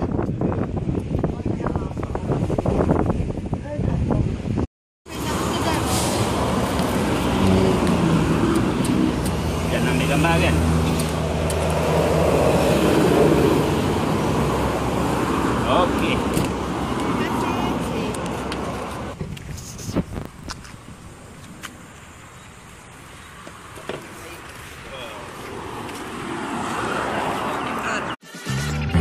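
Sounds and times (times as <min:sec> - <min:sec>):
road traffic: 0:00.0 - 0:29.0
people talking: 0:05.1 - 0:06.2, 0:17.0 - 0:18.2, 0:27.4 - 0:28.2
vehicle engine hum: 0:05.1 - 0:29.0.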